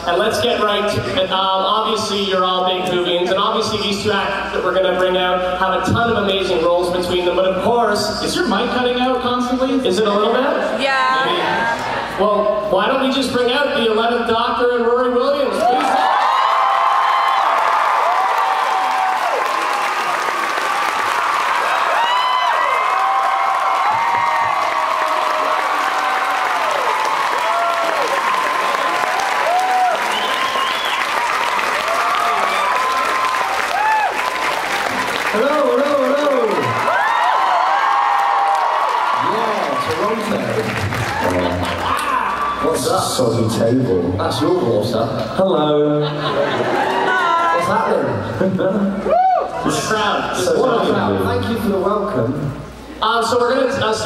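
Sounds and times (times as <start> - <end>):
audience clapping and cheering: 15.5 - 43.0
shrill screams and whoops: 15.6 - 34.7, 36.8 - 40.0, 41.1 - 42.6, 49.0 - 49.6.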